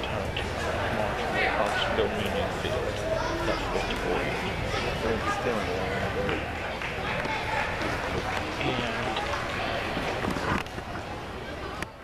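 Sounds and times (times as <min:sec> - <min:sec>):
faint music: 0:00.0 - 0:12.0
spectators chattering: 0:00.0 - 0:12.0.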